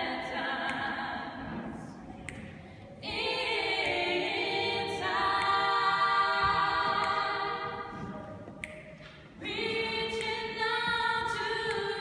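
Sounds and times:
women singing a cappella: 0.0 - 8.4, 9.3 - 12.0.

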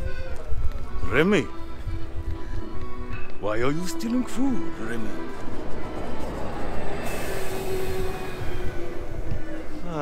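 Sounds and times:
bus driving past on cobblestones: 1.7 - 10.0
hiss: 7.0 - 9.3.

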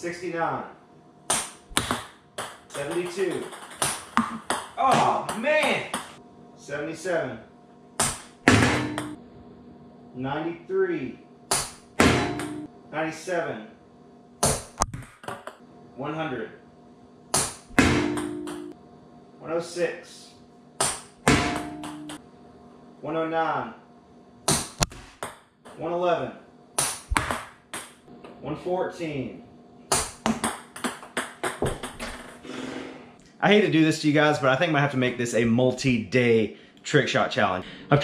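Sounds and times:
ping pong ball bouncing on floor: 1.3 - 6.2, 8.1 - 9.2, 11.5 - 12.7, 17.4 - 18.8, 20.8 - 22.2, 29.9 - 32.4.

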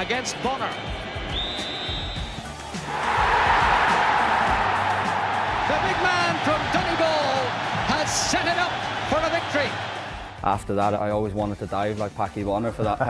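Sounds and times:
stadium crowd cheering: 0.0 - 10.4.

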